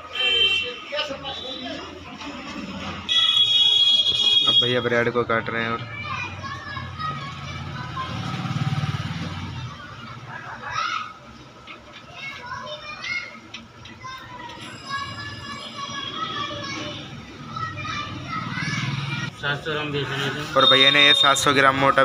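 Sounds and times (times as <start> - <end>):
children playing: 0.0 - 4.2, 5.2 - 19.6
background chatter of voices: 0.0 - 22.0.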